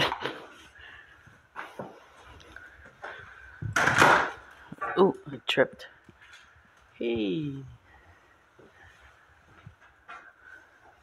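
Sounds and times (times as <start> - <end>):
foot scraping clutter on wooden floor: 0.0 - 4.7, 8.5 - 11.0
faint knocks and shuffles: 0.0 - 5.0, 5.8 - 11.0.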